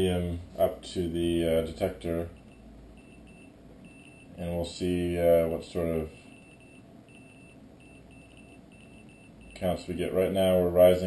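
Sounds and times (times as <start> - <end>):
geiger counter beeping: 2.3 - 4.4, 6.2 - 9.8.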